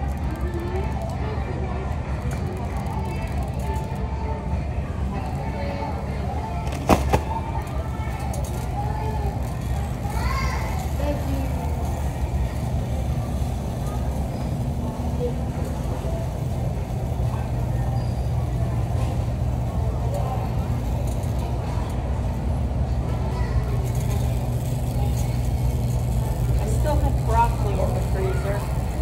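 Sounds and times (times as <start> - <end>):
constant low hum: 0.0 - 29.0
wheels rolling on concrete: 0.0 - 29.0.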